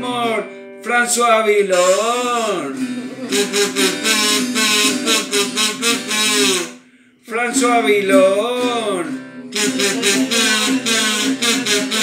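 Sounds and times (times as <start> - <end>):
harmonica playing: 0.0 - 0.8, 1.8 - 7.0, 7.6 - 12.0
person singing: 0.0 - 12.0
strummed acoustic guitar: 0.0 - 12.0.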